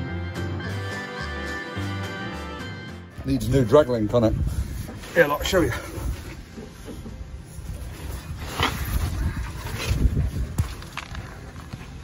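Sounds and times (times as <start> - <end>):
clothing scraping on concrete: 4.5 - 12.0.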